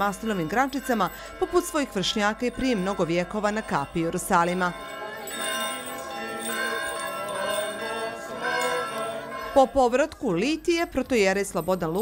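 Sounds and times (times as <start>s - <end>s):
small bells jingling: 0.0s - 12.0s
voices singing: 0.0s - 12.0s.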